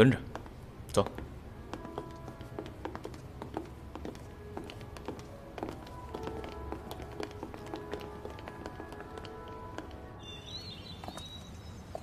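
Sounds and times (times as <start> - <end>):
soft background music: 0.0 - 12.0
footsteps on hard floor: 0.2 - 10.0
high chirps: 10.2 - 12.0.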